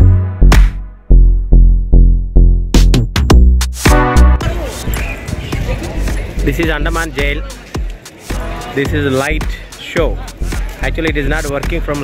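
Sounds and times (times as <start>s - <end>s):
electronic music with thumping beat: 0.0s - 12.0s
voices: 4.4s - 12.0s.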